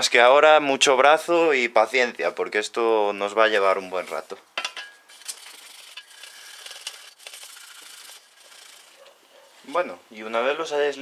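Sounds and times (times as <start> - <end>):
foil scrubbing on metal: 5.1 - 9.2.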